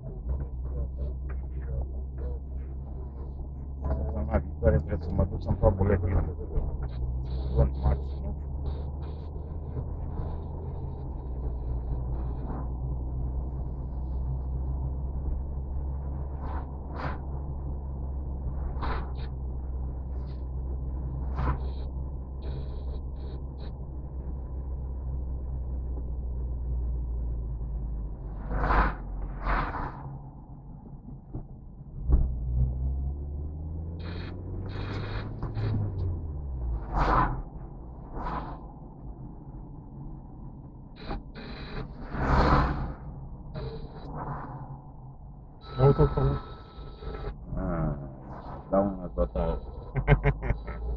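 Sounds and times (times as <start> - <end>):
car engine and tyre hum: 0.0 - 50.9.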